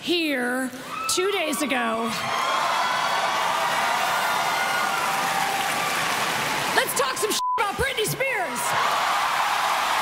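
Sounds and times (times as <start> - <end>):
audience cheering: 1.2 - 10.0
audience clapping: 2.3 - 10.0.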